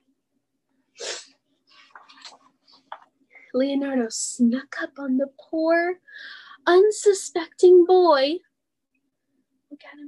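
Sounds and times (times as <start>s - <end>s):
book page turning: 1.7s - 3.1s.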